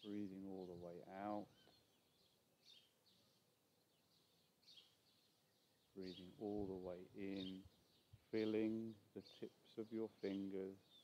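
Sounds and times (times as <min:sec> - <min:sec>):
high bird chirps: 0:07.2 - 0:08.7.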